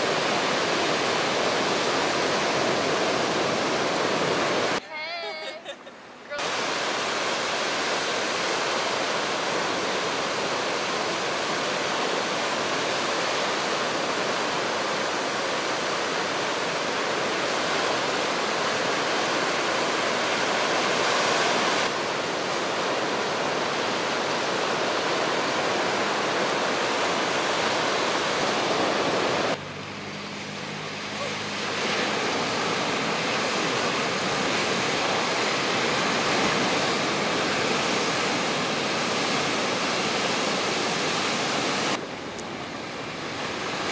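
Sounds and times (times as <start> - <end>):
ocean surf breaking: 0.0 - 43.9.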